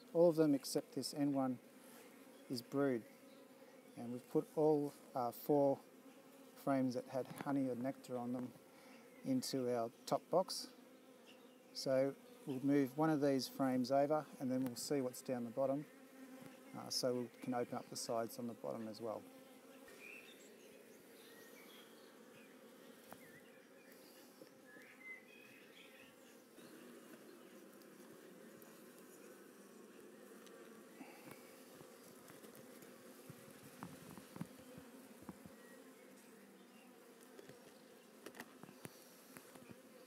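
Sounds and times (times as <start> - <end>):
bees buzzing: 0.0 - 40.0.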